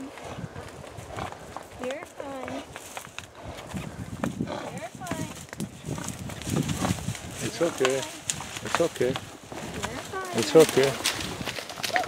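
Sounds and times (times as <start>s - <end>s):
hooves clip-clopping on dirt: 0.0s - 12.0s.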